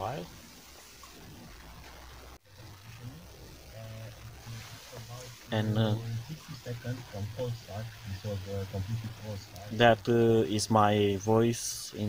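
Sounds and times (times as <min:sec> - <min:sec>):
speaker hiss: 0:00.0 - 0:12.0
man's voice through car radio: 0:03.7 - 0:12.0.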